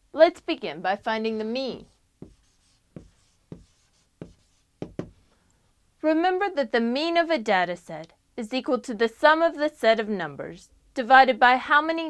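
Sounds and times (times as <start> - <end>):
marker writing on whiteboard: 1.7 - 5.2.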